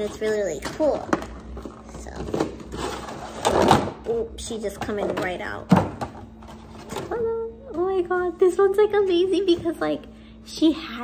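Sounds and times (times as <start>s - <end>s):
cardboard and plastic rustling: 0.0s - 8.1s.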